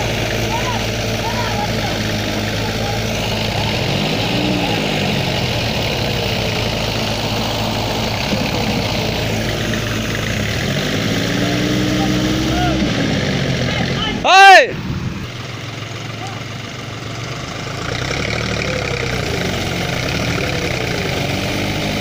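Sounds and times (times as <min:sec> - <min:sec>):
diesel tractor engines under load: 0:00.0 - 0:22.0
engine revving: 0:00.0 - 0:22.0.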